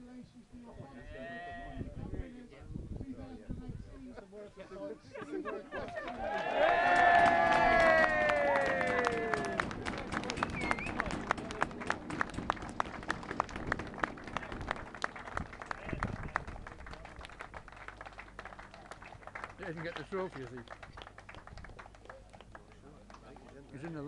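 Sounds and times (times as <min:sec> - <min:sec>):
crowd clapping: 0:05.8 - 0:24.0
group of voices cheering: 0:06.1 - 0:09.8.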